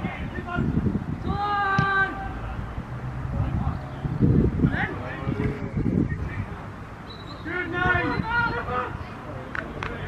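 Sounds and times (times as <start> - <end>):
players shouting: 0.0 - 3.6, 7.1 - 9.2.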